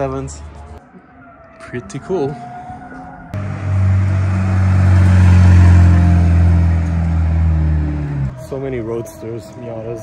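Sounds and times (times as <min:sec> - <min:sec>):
car engine low revving: 0:03.4 - 0:08.4.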